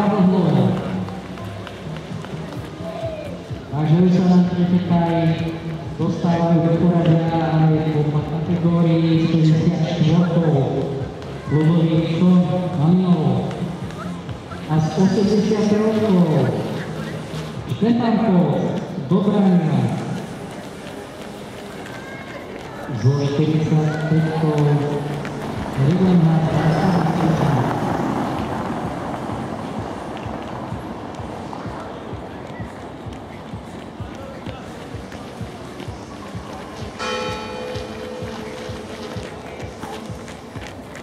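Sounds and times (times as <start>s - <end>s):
background music: 0.0s - 41.0s
faint distant voices: 0.0s - 41.0s
running footsteps on pavement: 0.0s - 41.0s.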